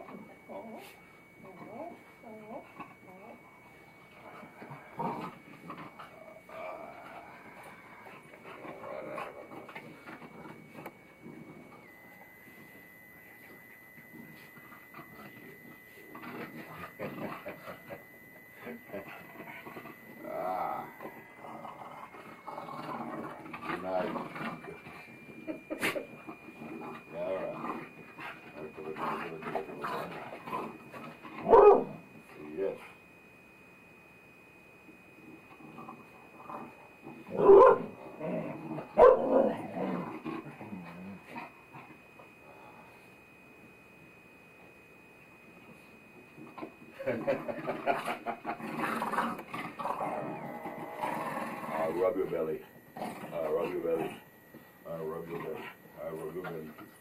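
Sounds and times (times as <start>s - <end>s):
dogs whining: 0.1s - 32.0s, 35.4s - 42.3s
excited dog noises: 22.3s - 26.3s.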